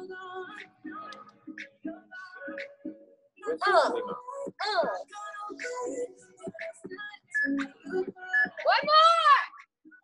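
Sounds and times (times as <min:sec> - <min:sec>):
woman speaking: 0:08.6 - 0:09.5.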